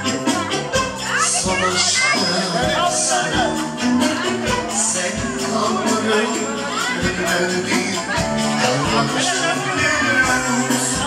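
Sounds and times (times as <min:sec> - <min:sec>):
music with a beat: 0:00.0 - 0:11.0
people calling and talking: 0:00.0 - 0:11.0.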